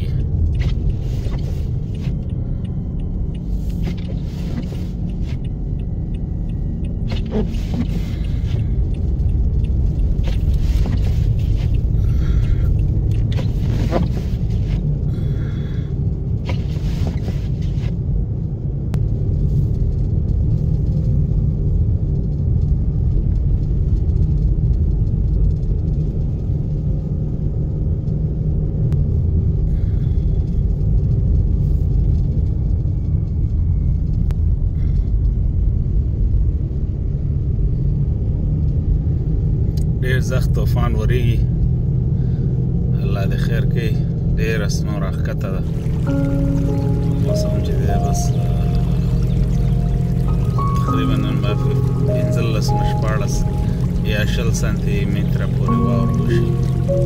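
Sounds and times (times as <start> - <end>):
car driving on snow from inside: 0.0 - 57.0.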